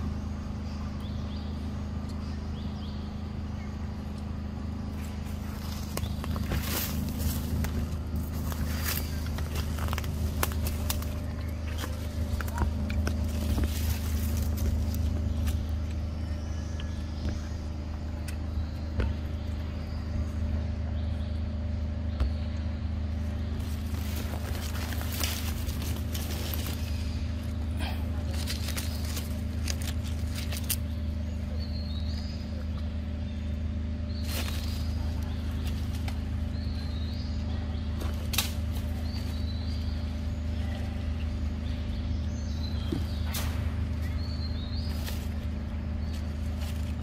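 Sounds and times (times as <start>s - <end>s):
low motor hum: 0.0s - 47.0s.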